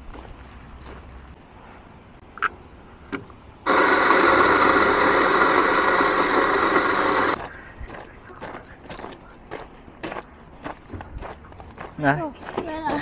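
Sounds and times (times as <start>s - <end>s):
coffee grinder motor grinding beans: 3.7s - 7.4s.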